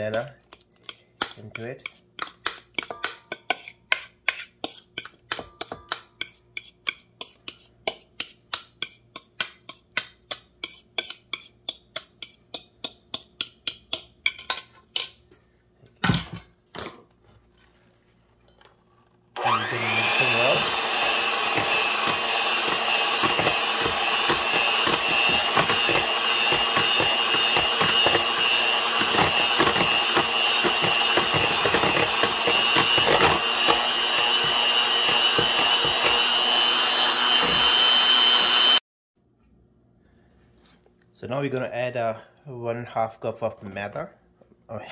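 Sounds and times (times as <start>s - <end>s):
utensil tapping metal bowl: 0.9s - 15.1s
electric hand mixer whining: 19.4s - 38.8s.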